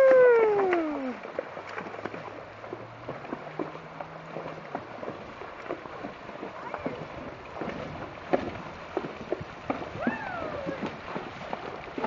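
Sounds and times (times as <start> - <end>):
hooves splashing through water: 0.0 - 12.0
water rushing: 0.0 - 12.0.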